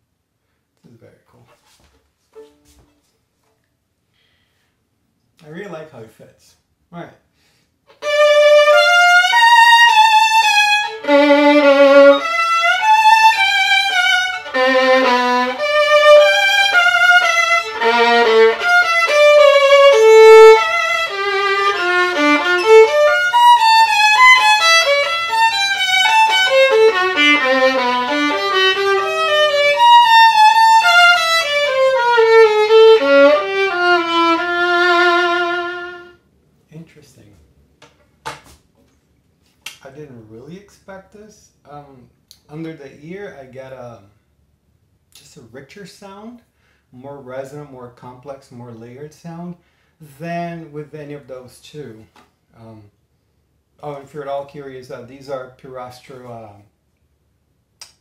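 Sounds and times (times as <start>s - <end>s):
solo violin with vibrato: 7.9s - 36.2s.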